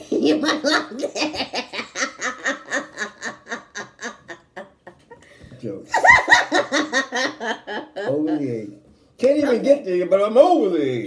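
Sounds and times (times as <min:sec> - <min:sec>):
woman laughing: 0:00.0 - 0:05.2, 0:05.9 - 0:08.4.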